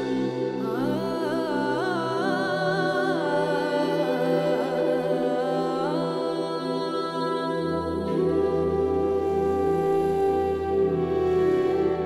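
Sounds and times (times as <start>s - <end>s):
wordless humming voice: 0.0s - 12.0s.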